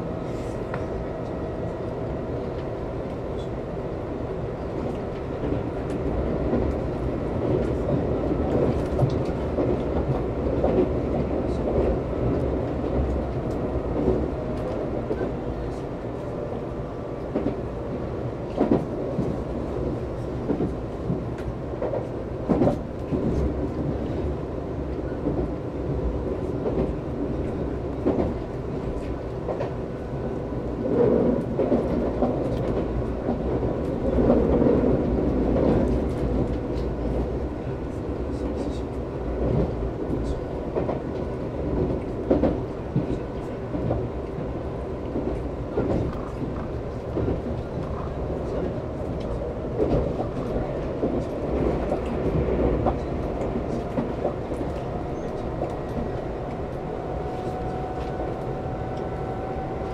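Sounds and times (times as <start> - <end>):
train running at speed: 0.0 - 59.9.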